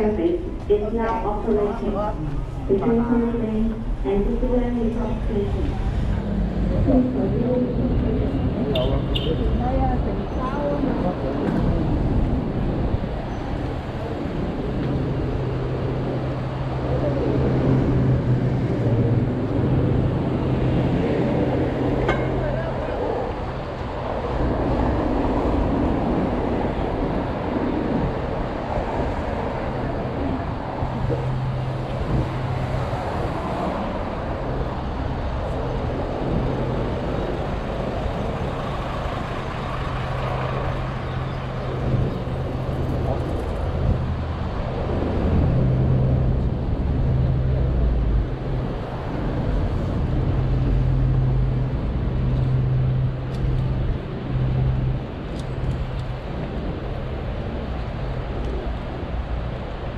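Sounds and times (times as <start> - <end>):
road noise roar: 0.0 - 59.9
vehicle engines running: 0.0 - 59.9.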